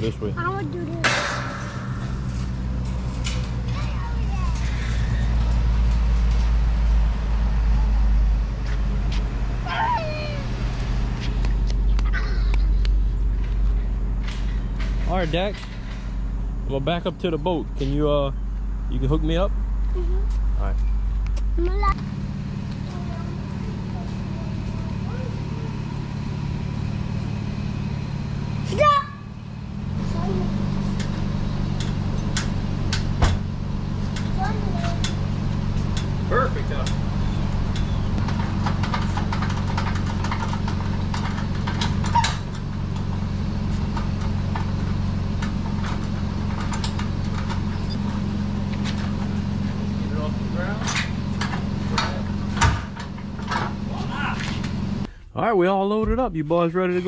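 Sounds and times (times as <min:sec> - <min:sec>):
pickup truck idling: 0:00.0 - 0:55.2.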